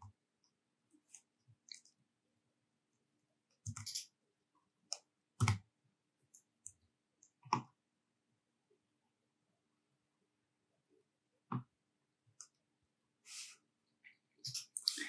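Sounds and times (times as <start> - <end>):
mouse and keyboard clicks: 4.9 - 5.6.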